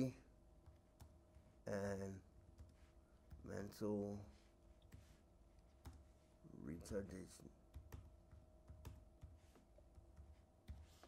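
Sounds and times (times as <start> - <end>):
spoken word: 1.7 - 2.2.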